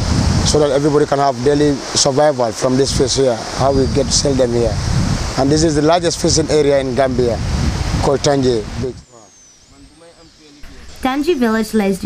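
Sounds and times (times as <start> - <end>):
distant people talking: 8.1 - 11.4.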